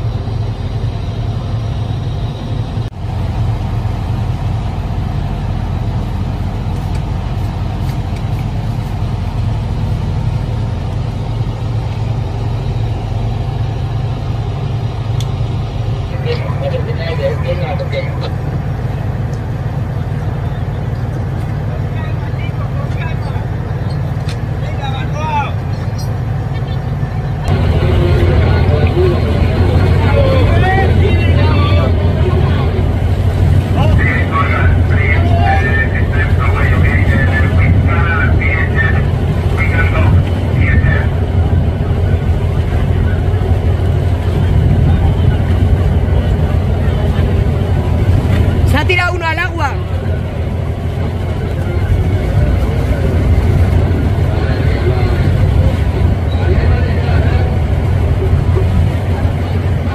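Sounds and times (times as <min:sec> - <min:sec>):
boat engine droning: 0:00.0 - 0:59.9
people calling out: 0:34.0 - 0:36.7.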